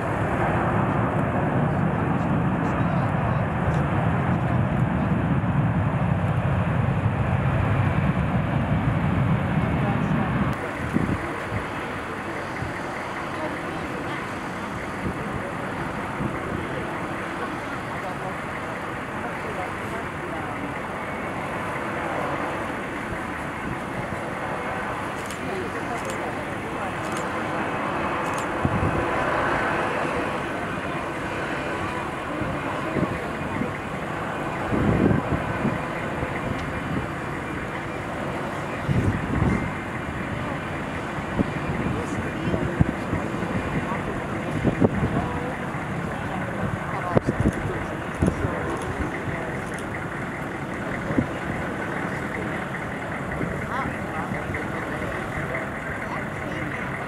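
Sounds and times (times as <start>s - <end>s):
jet engines taxiing: 0.0s - 57.0s.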